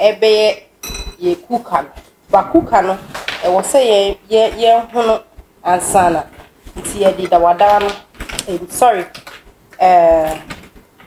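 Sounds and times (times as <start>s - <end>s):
person speaking: 0.0s - 10.6s
crockery bowl clinking: 0.8s - 1.3s.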